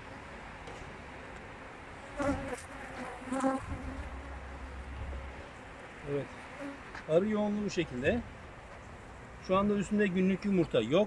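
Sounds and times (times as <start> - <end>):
honeybees buzzing: 2.0 - 7.0.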